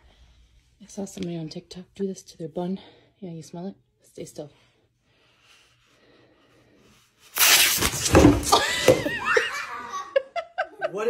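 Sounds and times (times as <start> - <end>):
rabbit scuffle with sharp knocks: 7.4 - 9.0.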